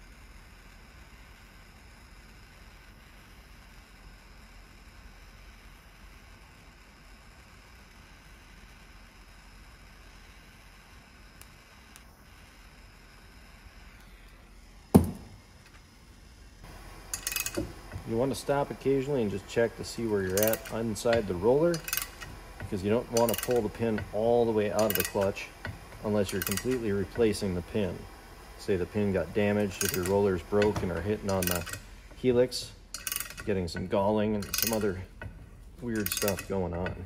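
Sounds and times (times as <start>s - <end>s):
propane torch hissing: 0.0s - 37.0s
sharp loud knock: 15.0s - 15.3s
metallic clinking: 16.6s - 37.0s.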